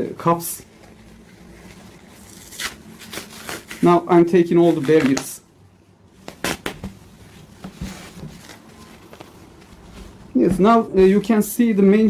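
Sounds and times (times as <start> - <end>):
diaper rustling: 0.2 - 5.4, 6.1 - 11.4
diaper tearing: 2.3 - 5.4, 6.2 - 6.8.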